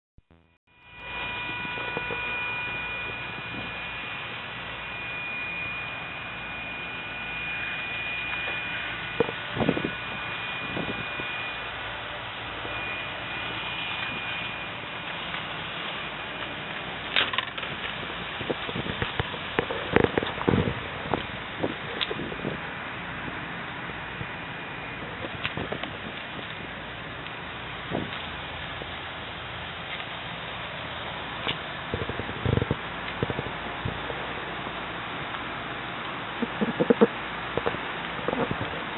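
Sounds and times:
car engine running with whine: 0.2s - 38.9s.

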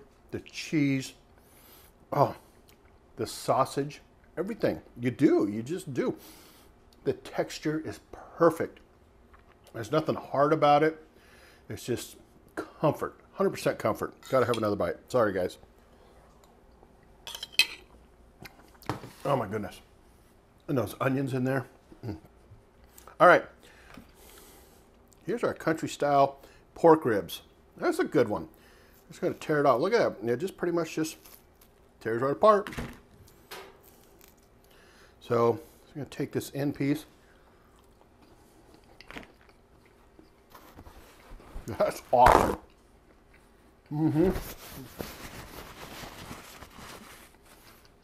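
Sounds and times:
faint chewing: 37.6s - 41.4s.

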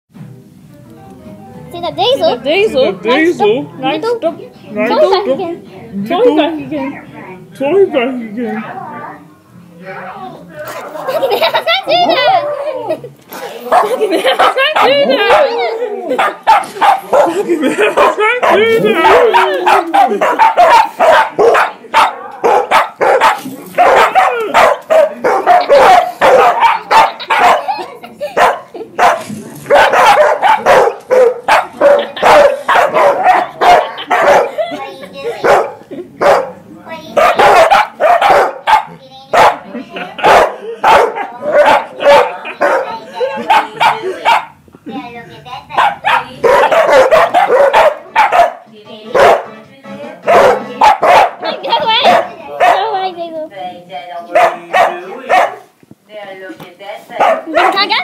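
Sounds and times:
dog barking and yowling: 13.7s - 34.6s, 35.4s - 36.6s, 37.2s - 44.6s, 45.8s - 48.6s, 50.2s - 52.9s, 54.3s - 55.6s, 57.2s - 57.9s.

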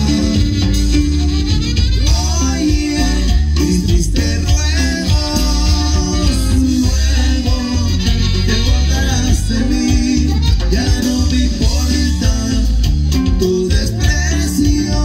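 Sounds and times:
dance band playing cumbia: 0.0s - 15.0s
heavy bass line: 0.0s - 15.0s.

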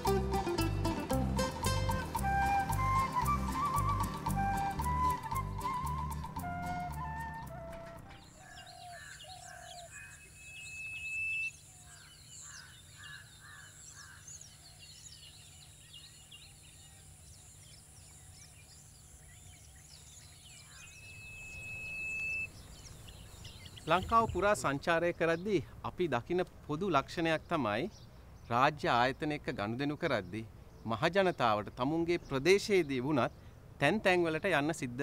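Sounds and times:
flute music: 0.0s - 8.3s
thin rising whistle: 2.2s - 8.2s, 10.3s - 11.6s, 21.1s - 22.5s
birds chirping and calling: 7.3s - 25.5s
bird four-note call: 21.0s - 22.6s.

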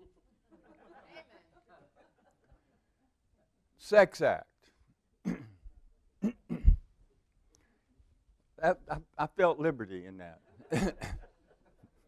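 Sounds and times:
man clearing throat: 5.2s - 6.9s, 10.7s - 11.2s
man laughing: 10.6s - 11.5s.

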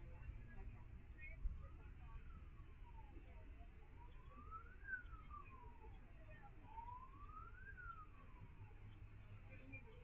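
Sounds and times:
faint siren wailing: 4.0s - 6.0s, 6.6s - 8.6s.

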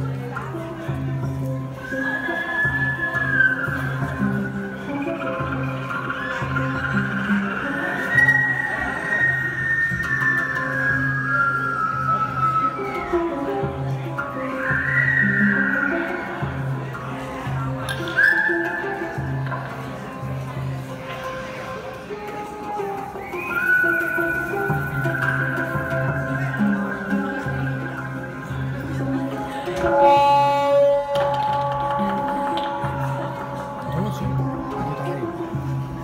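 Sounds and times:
acoustic band music: 0.0s - 36.0s
hang drums playing low notes: 2.8s - 8.8s, 23.9s - 36.0s
high sliding melody: 22.2s - 36.0s.

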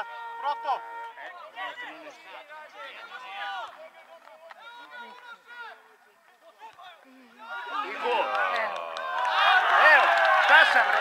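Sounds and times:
voices calling and talking: 0.0s - 11.0s.

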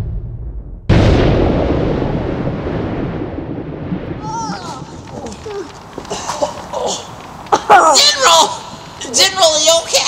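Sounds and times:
explosion blast with rumble: 0.0s - 5.4s.

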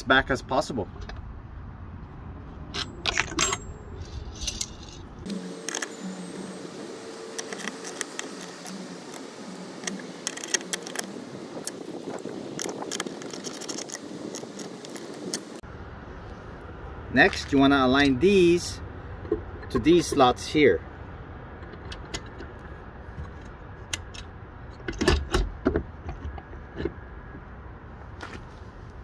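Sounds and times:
metal brackets clinking and scraping: 2.7s - 15.6s, 18.4s - 20.6s, 21.5s - 27.0s.

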